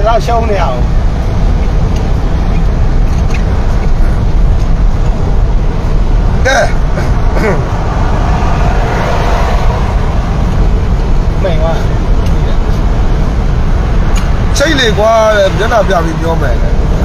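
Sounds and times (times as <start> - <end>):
vehicle rumble from inside cabin: 0.0 - 17.0
man talking and laughing: 6.3 - 7.8.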